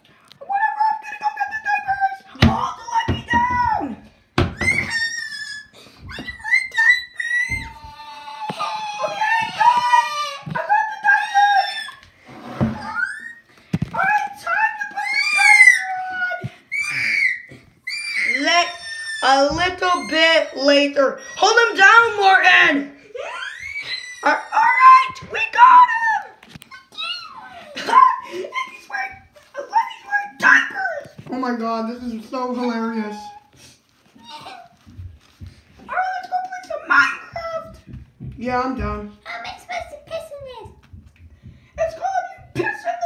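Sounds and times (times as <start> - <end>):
high-pitched voice screaming: 4.6 - 12.0, 14.9 - 22.3, 23.2 - 29.2.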